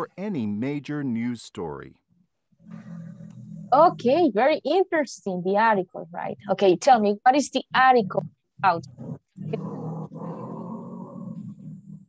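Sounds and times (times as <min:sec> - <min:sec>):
distorted voice over video call: 0:00.0 - 0:01.9, 0:03.7 - 0:08.8.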